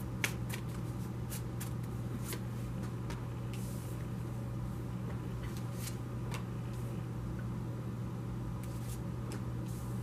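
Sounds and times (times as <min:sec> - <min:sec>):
heater humming: 0:00.0 - 0:10.0.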